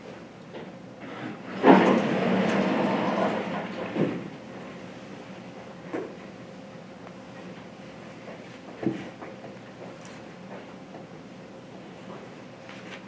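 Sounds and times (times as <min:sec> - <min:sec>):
sliding panel rumbling along track: 0:01.0 - 0:04.8.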